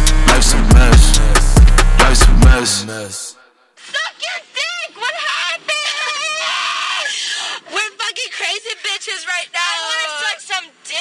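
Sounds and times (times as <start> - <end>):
person's voice: 0.2 - 11.0
person screaming raspily: 5.0 - 7.7.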